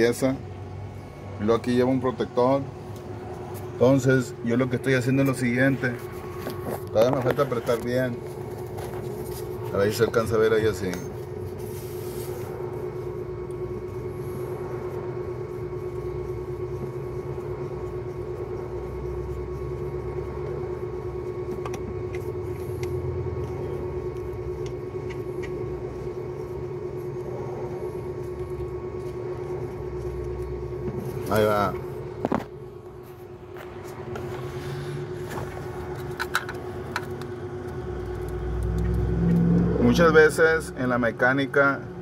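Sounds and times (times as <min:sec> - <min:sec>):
motor humming: 0:02.9 - 0:40.8.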